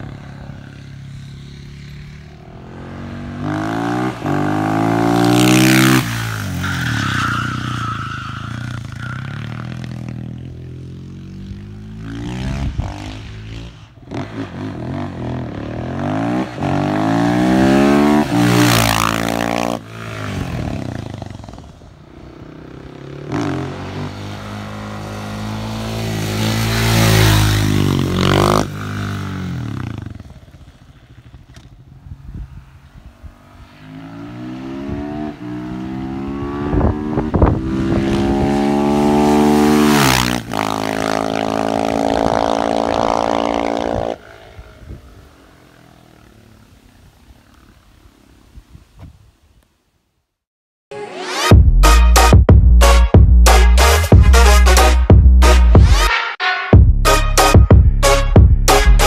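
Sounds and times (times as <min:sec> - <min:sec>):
motorcycle accelerating past: 0:00.0 - 0:06.7, 0:08.5 - 0:47.9.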